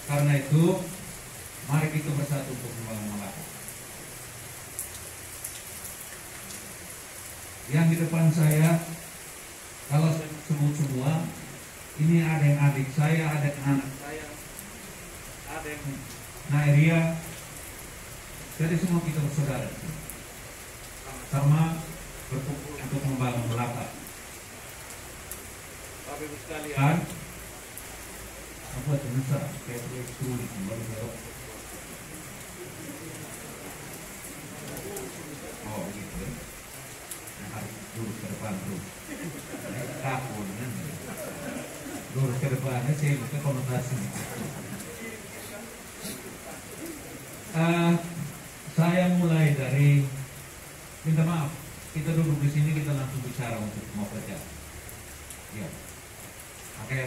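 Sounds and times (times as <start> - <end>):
rain on a metal roof: 0.0 - 57.0
steady background hiss: 0.0 - 57.0
low voices murmuring: 26.4 - 48.7.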